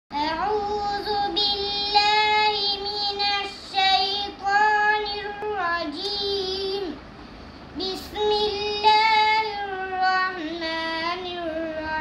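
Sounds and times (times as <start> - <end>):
girl chanting recitation: 0.1 - 7.1, 7.8 - 12.0.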